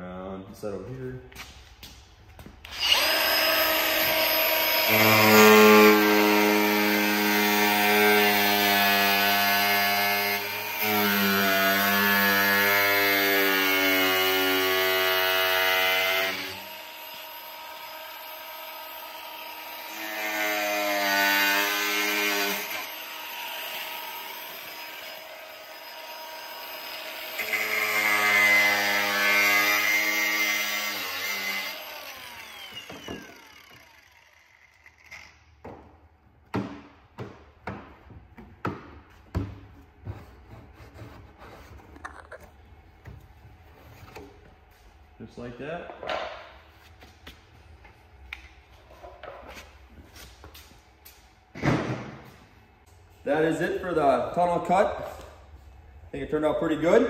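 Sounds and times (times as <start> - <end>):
angle grinder cutting plastic: 2.6 - 35.6.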